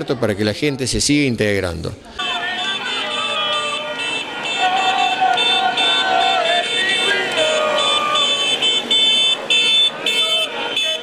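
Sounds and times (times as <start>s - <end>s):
traffic: 0.0s - 11.0s
car horns honking: 2.2s - 11.0s
people shouting: 2.2s - 11.0s.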